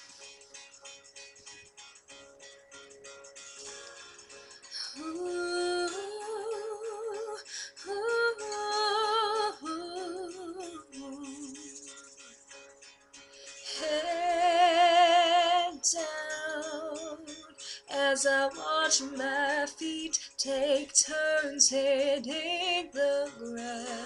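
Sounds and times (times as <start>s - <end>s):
woman singing wordless vocal runs: 4.8s - 11.8s.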